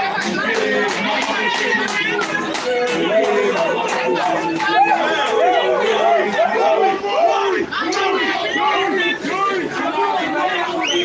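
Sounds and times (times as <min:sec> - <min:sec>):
crowd of men chanting: 0:00.0 - 0:11.0.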